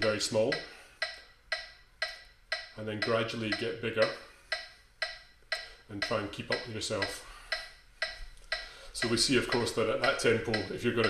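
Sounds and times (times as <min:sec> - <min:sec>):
metronome clicking: 0:00.0 - 0:11.0.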